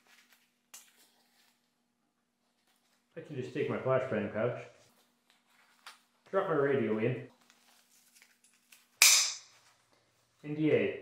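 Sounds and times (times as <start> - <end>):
faint handling rustle: 4.7 - 6.4, 7.3 - 8.8.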